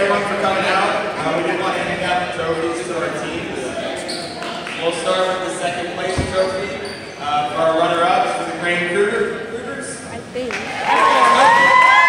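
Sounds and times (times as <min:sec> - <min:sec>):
voices talking in a gym: 0:00.0 - 0:11.8.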